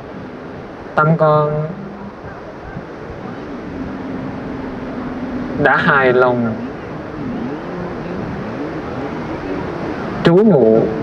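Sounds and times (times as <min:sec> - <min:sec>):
sea surf: 0:00.0 - 0:11.0
wind: 0:00.0 - 0:11.0
faint wavering tone: 0:01.5 - 0:11.0.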